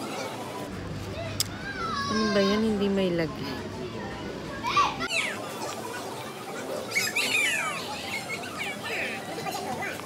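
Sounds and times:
children calling and squealing: 1.1 - 3.1, 3.7 - 10.0.

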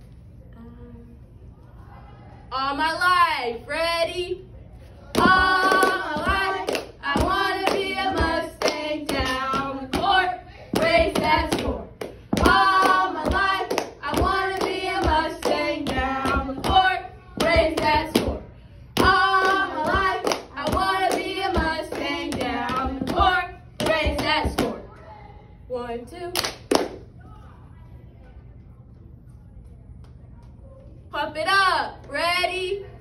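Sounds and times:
girls chanting a cheer: 5.1 - 26.4
sharp hand claps: 26.4 - 27.0.

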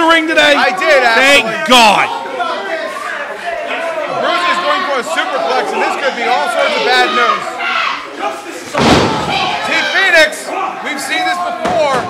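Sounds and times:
wrestlers slamming onto mat: 8.7 - 9.7.

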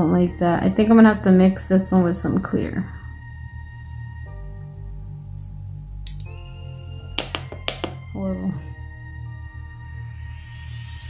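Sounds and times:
ambient background music: 0.0 - 11.0.

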